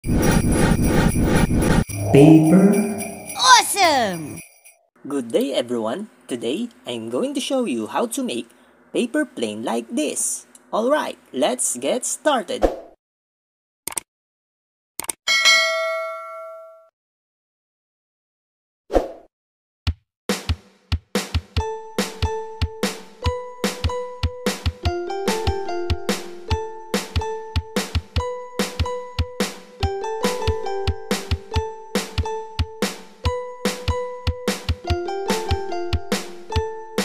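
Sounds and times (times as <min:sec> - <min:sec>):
jingle bells shaken rhythmically: 0:01.8 - 0:04.7
notification bell ding: 0:02.0 - 0:03.4, 0:15.3 - 0:16.8.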